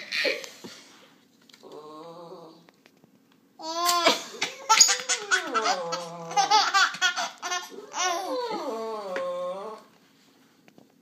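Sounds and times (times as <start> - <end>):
baby laughing: 3.7 - 8.4.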